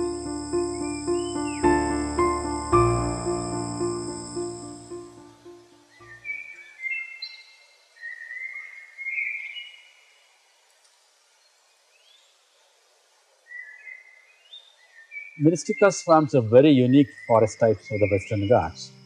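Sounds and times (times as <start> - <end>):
bird whistling stepped notes: 0.0 - 4.9
soundtrack music: 0.0 - 5.4.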